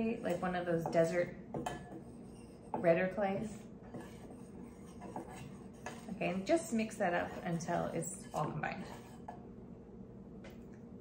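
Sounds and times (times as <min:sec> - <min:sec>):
spoon stirring powder in bowl: 0:00.0 - 0:09.5.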